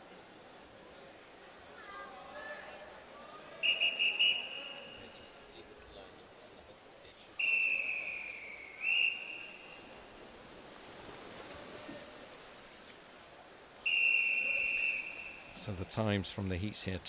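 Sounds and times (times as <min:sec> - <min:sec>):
referee's whistle blasts: 0:03.6 - 0:05.2, 0:07.4 - 0:09.8, 0:13.8 - 0:15.6.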